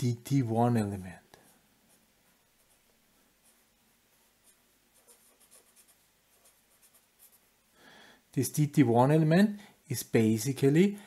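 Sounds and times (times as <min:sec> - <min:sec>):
felt-tip pen scratching on paper: 0:04.4 - 0:07.4.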